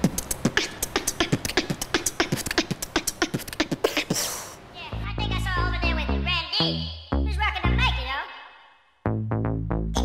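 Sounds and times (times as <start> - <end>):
person beatboxing: 0.0 - 4.7.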